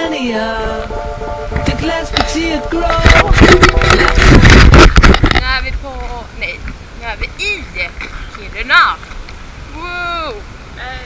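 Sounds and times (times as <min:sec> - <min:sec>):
wind noise on microphone: 0:00.0 - 0:11.0
camera handling knocks and scrapes: 0:03.0 - 0:05.4.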